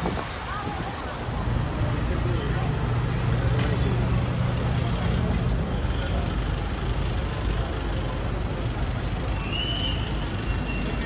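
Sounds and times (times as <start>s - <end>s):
busy street noise: 0.0s - 11.0s
car engines running: 0.0s - 11.0s
voices of passers-by: 0.0s - 11.0s.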